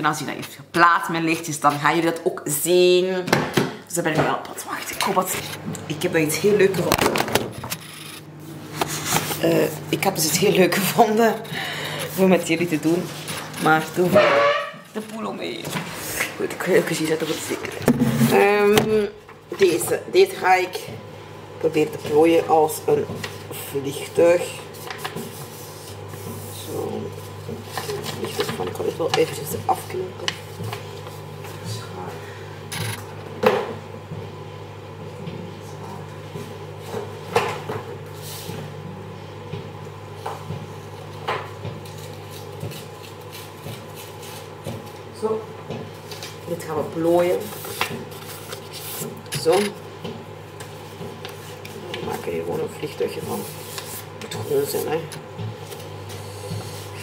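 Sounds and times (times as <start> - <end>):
steady low hum: 0.1 - 57.0.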